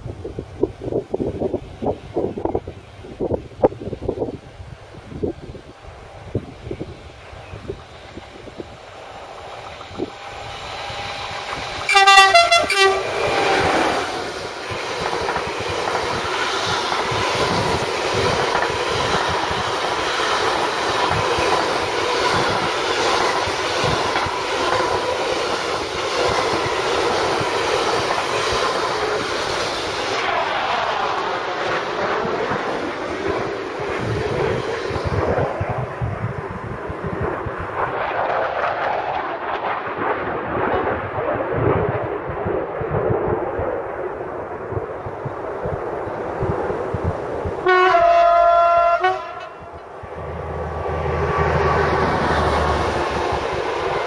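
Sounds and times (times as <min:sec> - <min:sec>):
train wheels rumbling and clattering: 0:00.0 - 0:54.0
wind buffeting microphone: 0:00.0 - 0:54.0
train horn: 0:11.9 - 0:13.4, 0:47.6 - 0:49.9.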